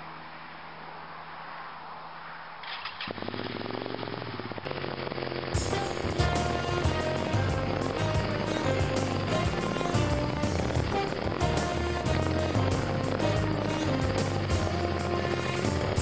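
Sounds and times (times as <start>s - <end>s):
motorcycle engine running hard: 2.7s - 16.0s
music with steady drum beat: 5.6s - 16.0s.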